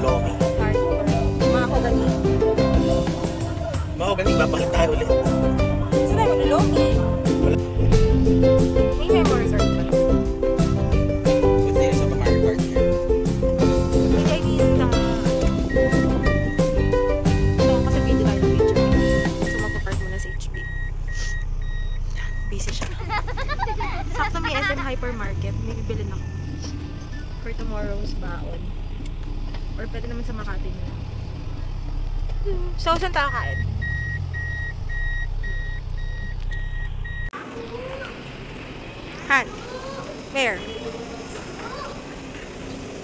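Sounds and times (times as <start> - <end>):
low vehicle hum: 0.0 - 43.0
car reversing beeper: 14.6 - 23.5, 24.8 - 28.9, 33.0 - 37.8.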